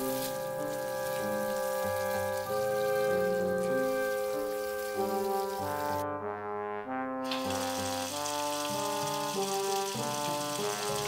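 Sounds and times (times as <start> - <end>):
garden hose spraying water: 0.0 - 6.0, 7.3 - 11.0
background music of held chords: 0.0 - 11.0.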